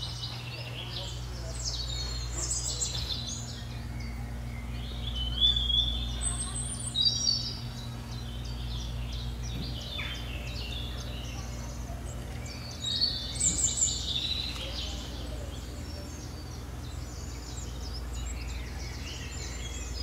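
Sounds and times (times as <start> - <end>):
bird-like chirping: 0.0 - 20.0
steady low hum: 0.0 - 20.0.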